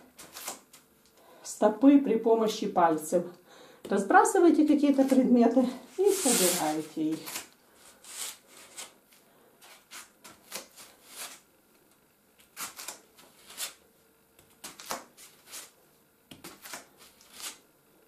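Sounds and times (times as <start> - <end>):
bare foot brushing rubber mat: 5.9 - 7.3.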